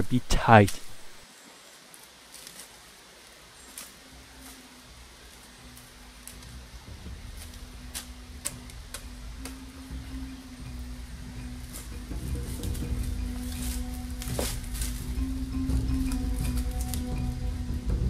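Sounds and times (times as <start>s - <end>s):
background music: 3.8s - 18.0s.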